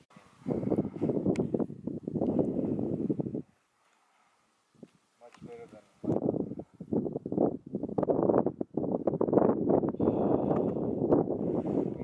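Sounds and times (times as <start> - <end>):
wind buffeting microphone: 0.0 - 3.6, 4.8 - 12.0.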